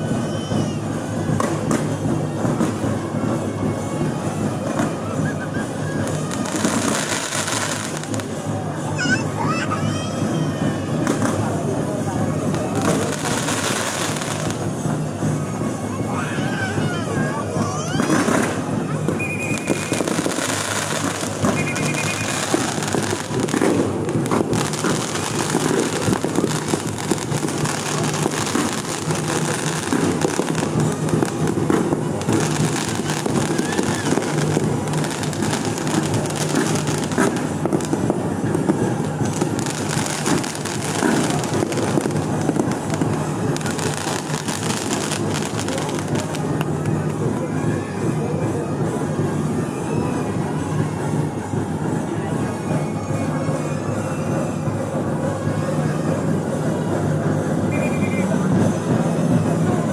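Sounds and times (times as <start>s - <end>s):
crowd voices: 0.0s - 59.9s
fireworks bangs and crackles: 0.0s - 59.9s
high whistles: 19.1s - 23.2s, 57.6s - 58.5s.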